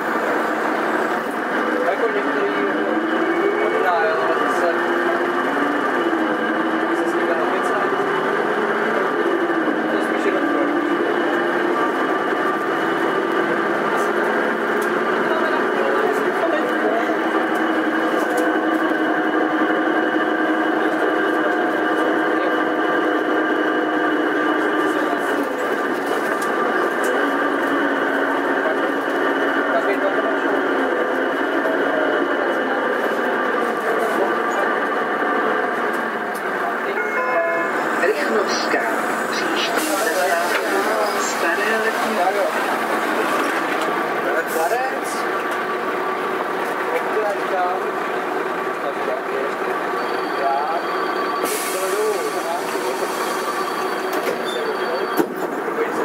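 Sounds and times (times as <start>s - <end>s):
bus engine droning: 0.0s - 56.0s.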